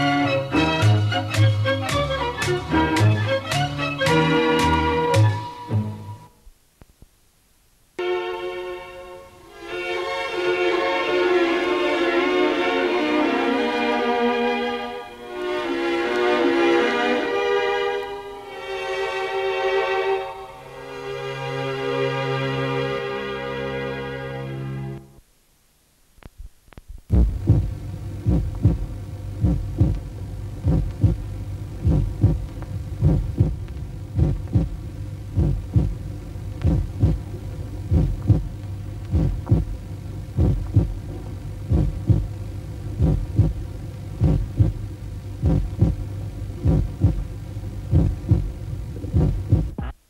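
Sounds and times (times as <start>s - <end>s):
steady low hum: 0.0s - 50.0s
low throbbing pulse: 27.1s - 49.9s.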